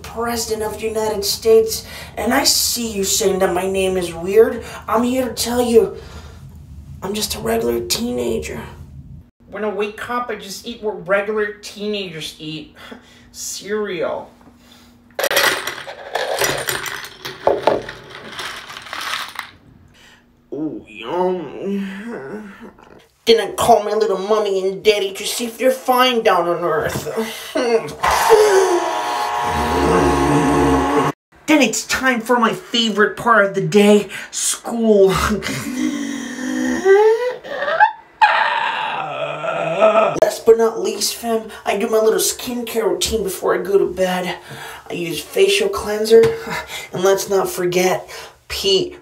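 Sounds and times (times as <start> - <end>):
screws clattering into plastic bowl: 15.2 - 19.5
man vocalising rising pitch: 20.5 - 23.0, 28.3 - 31.2, 36.3 - 40.2.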